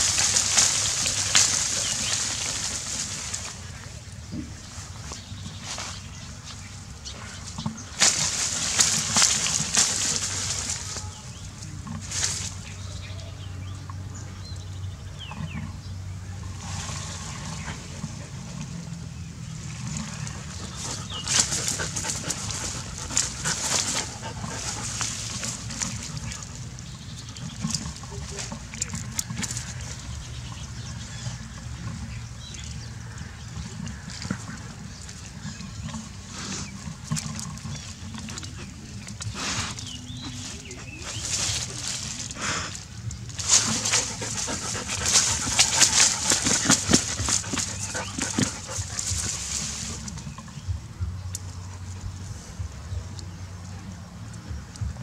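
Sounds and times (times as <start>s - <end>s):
dog digging in dirt: 0.0s - 12.9s, 16.6s - 50.6s.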